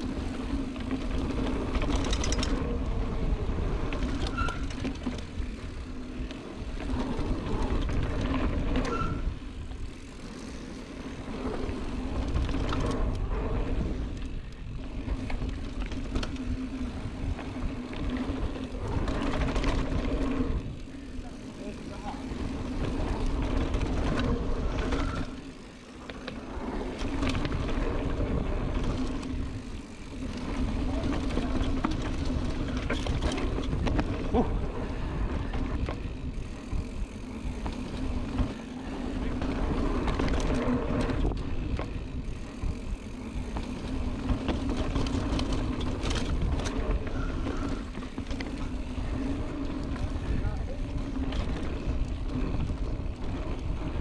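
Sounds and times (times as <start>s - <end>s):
bike tyres rolling over dirt: 0.0s - 54.0s.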